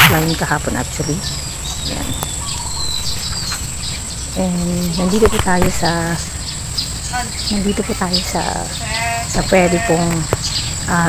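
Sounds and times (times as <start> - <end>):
high-pitched insect drone: 0.0 - 11.0
low microphone rumble: 0.0 - 11.0
birds whistling high notes: 0.2 - 11.0.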